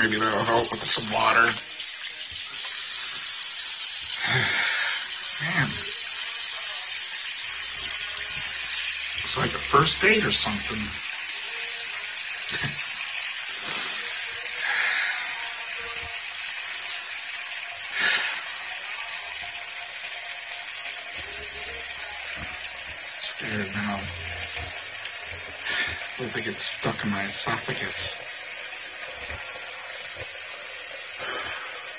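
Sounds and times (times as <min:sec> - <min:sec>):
tap water running: 0:00.0 - 0:31.9.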